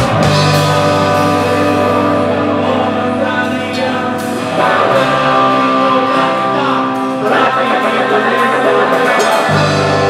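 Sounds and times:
bass line: 0.0s - 10.0s
electric guitars: 0.0s - 10.0s
person singing: 0.0s - 10.0s.

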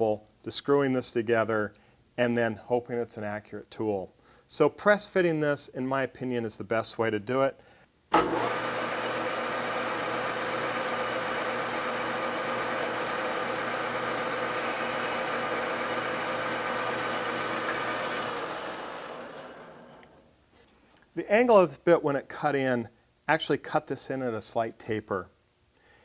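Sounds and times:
metal lathe running: 8.2s - 20.0s
lathe winding down: 8.2s - 20.3s.

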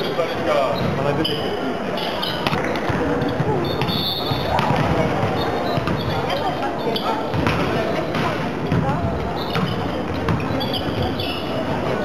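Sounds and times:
players' voices and calls: 0.0s - 12.0s
volleyball thuds: 2.4s - 6.3s, 7.3s - 11.2s.

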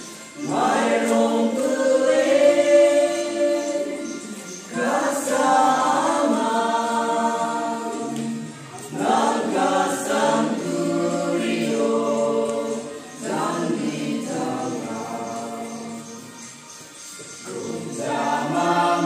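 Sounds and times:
group of voices singing: 0.0s - 19.0s.

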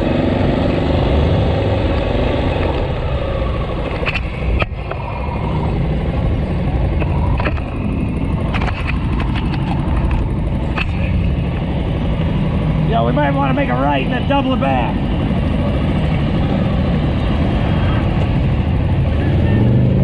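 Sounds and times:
motorcycle engine running: 0.0s - 20.0s
traffic noise: 0.0s - 20.0s.

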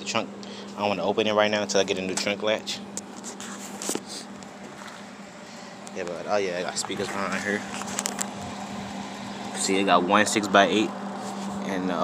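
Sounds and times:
steady low hum: 0.0s - 12.0s
phone handling rustle: 6.8s - 8.5s.

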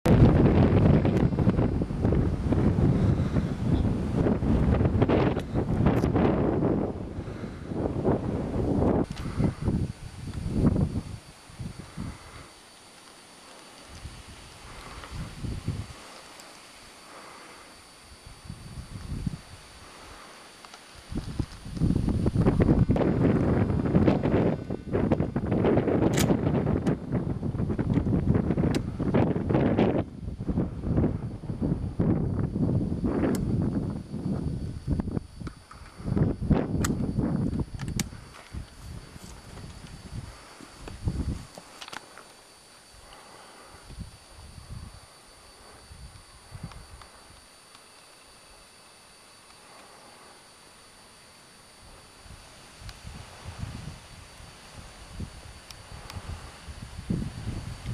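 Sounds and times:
sharp clicks: 26.0s - 27.0s, 36.8s - 38.8s
rustling through dry scrub: 38.2s - 43.9s.

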